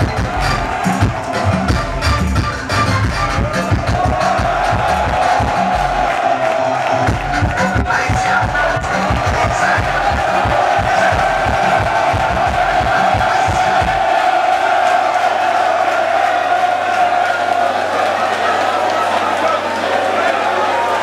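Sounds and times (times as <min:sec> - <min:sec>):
music playing: 0:00.0 - 0:17.1
crowd cheering and shouting: 0:00.0 - 0:21.0.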